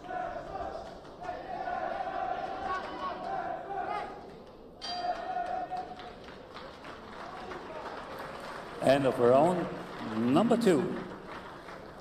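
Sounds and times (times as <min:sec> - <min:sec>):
crowd shouting in hall: 0:00.0 - 0:06.2
boxing ring bell ringing: 0:04.8 - 0:05.2.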